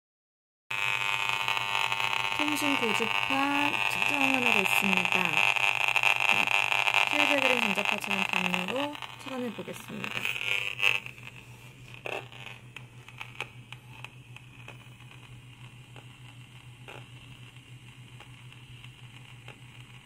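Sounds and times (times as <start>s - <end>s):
steady low hum: 0.7s - 20.0s.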